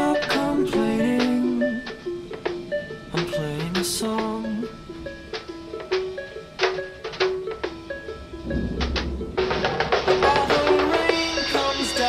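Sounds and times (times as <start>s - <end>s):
instrumental pop music: 0.0s - 12.0s.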